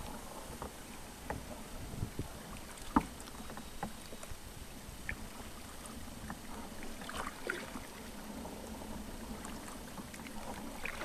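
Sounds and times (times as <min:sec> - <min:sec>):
kayak paddle in water: 0:00.0 - 0:11.0.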